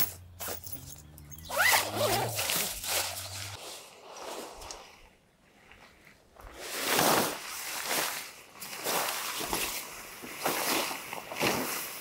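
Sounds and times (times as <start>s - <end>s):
zipper being pulled open: 0.4s - 3.6s.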